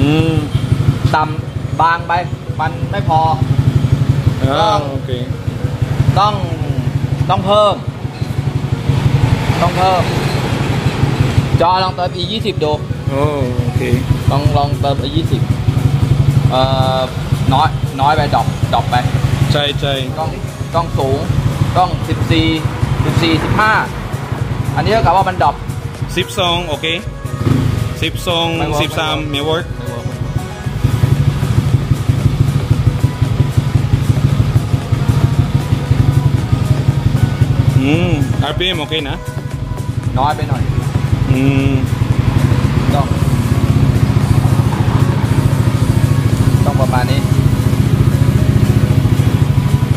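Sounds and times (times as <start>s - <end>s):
scooter engine idling: 0.0s - 49.9s.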